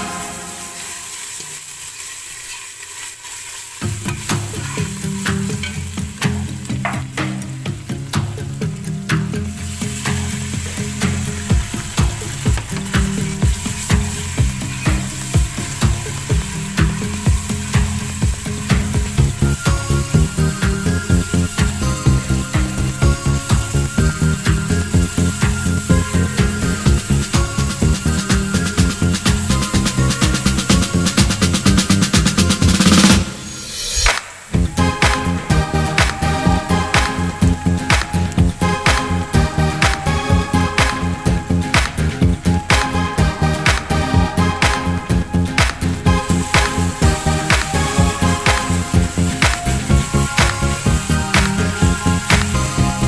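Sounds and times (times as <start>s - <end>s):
background music with steady beat: 0.0s - 1.2s, 3.8s - 53.0s
onions sizzling in hot oil: 0.0s - 53.0s.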